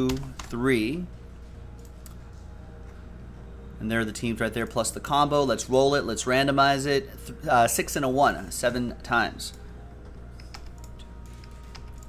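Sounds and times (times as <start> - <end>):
man speaking: 0.0 - 1.2, 3.8 - 9.6
steady low hum: 0.0 - 12.0.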